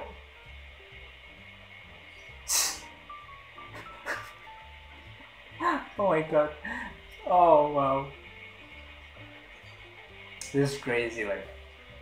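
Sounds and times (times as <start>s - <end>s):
sharp hissing burst: 0.0s - 12.0s
soft background music: 0.0s - 12.0s.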